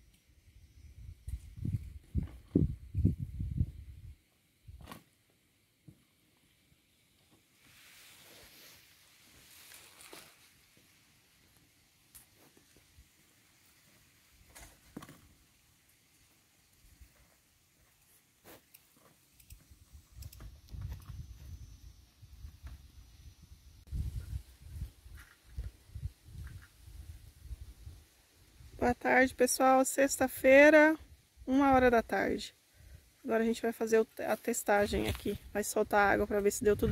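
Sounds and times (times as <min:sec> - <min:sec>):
hoe scraping dry soil: 0:07.6 - 0:10.7.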